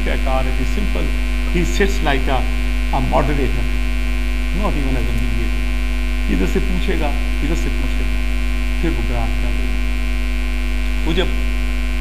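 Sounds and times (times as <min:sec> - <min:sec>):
man speaking: 0:00.0 - 0:03.8, 0:04.5 - 0:05.6, 0:06.3 - 0:08.2, 0:08.8 - 0:09.8, 0:10.9 - 0:11.4
electrical mains hum: 0:00.0 - 0:12.0.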